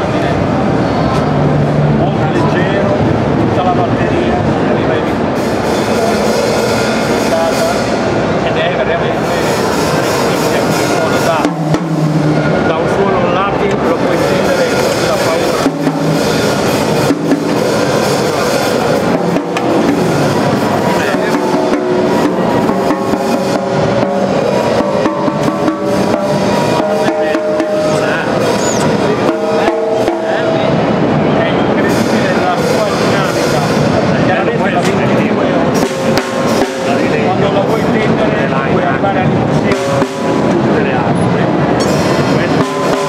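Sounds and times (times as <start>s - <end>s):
people talking: 0.0s - 11.7s, 12.3s - 43.0s
busy hall noise: 0.0s - 43.0s
man talking: 2.0s - 5.2s, 12.5s - 15.8s, 20.9s - 21.7s, 26.8s - 35.8s, 36.8s - 39.9s
drum kit playing loudly: 5.2s - 8.4s, 9.2s - 31.1s, 35.0s - 38.1s, 39.3s - 41.0s, 41.8s - 43.0s.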